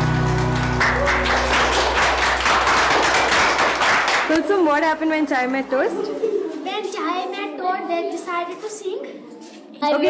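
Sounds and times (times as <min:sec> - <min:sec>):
music holding a chord: 0:00.0 - 0:02.2
hand clapping: 0:00.0 - 0:04.5.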